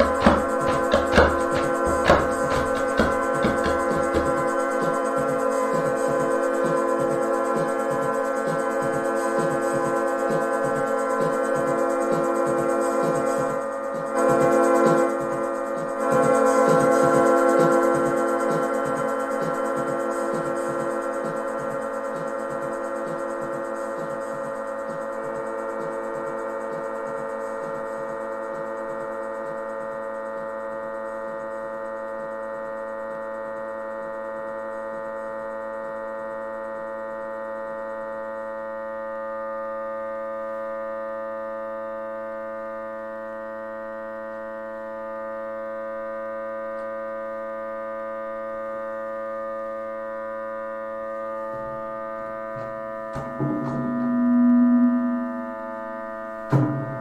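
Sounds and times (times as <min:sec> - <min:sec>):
loud low synth tone: 0:00.0 - 0:06.8, 0:50.9 - 0:57.0
rapid low pulsing: 0:00.0 - 0:26.0, 0:51.6 - 0:56.0
synthesizer drone chord: 0:00.0 - 0:57.0.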